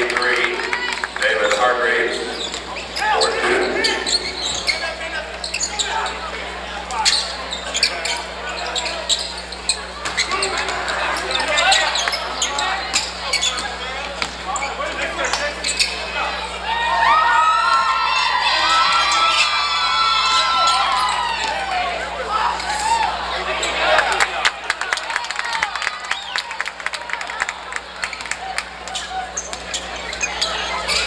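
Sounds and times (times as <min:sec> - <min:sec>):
spectators chattering and calling: 0:00.0 - 0:31.0.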